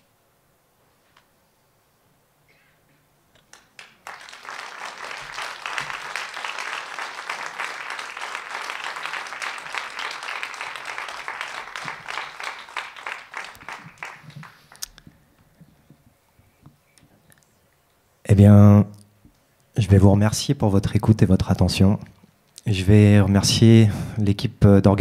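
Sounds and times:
audience applauding: 0:03.4 - 0:15.0.

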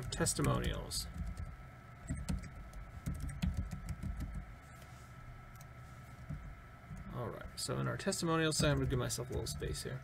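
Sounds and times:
keyboard typing: 0:00.0 - 0:04.4.

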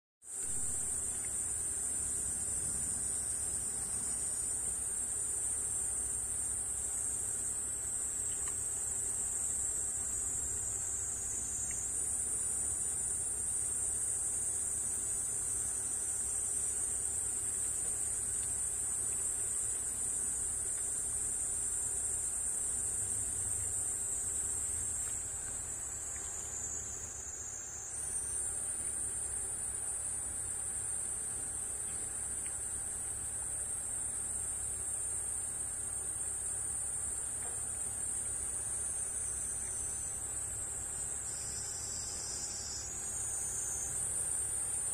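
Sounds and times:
high-pitched insect chorus: 0:00.2 - 0:44.9.

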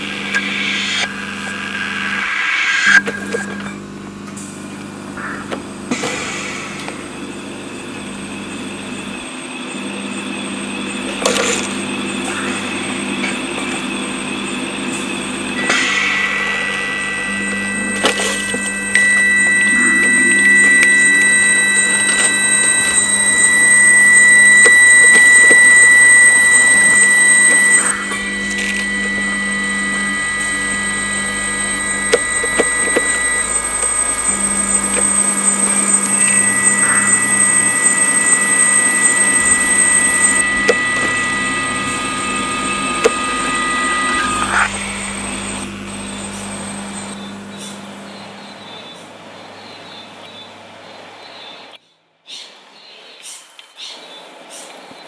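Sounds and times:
high tone: 0:00.0 - 0:04.2, 0:10.5 - 0:48.9
low machine hum: 0:00.0 - 0:51.2
layered electronic tones: 0:14.8 - 0:47.2
clicks: 0:15.6 - 0:47.7.

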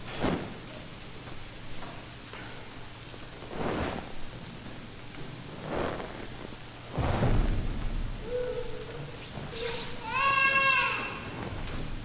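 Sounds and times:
quiet room hum: 0:00.0 - 0:12.0.

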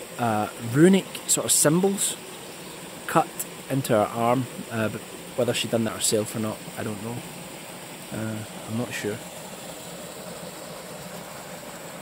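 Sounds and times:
small waterfall rushing into pool: 0:00.0 - 0:12.0.

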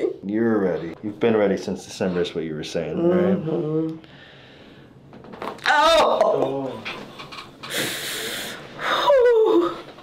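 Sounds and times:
person exhaling forcefully: 0:07.7 - 0:09.0.

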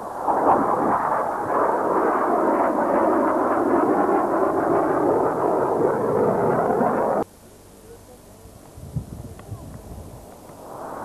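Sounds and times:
jet fighter flying past: 0:00.0 - 0:07.2, 0:10.5 - 0:11.0.

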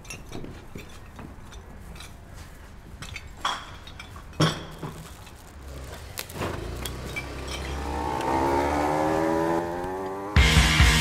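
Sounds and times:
motor scooter engine accelerating: 0:05.6 - 0:11.0.

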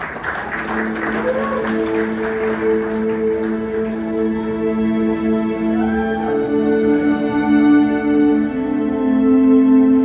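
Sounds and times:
audience applause: 0:00.0 - 0:04.2
soft sustained instrumental chords: 0:00.1 - 0:10.0.

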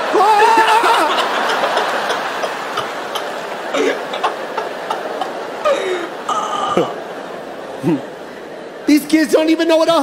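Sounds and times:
audience laughing: 0:00.0 - 0:08.3.

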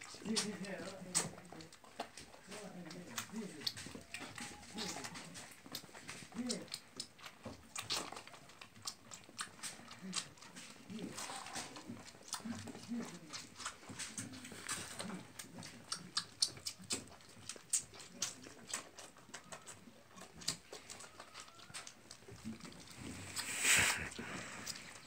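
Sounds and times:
lamb suckling from bottle: 0:00.0 - 0:25.0.

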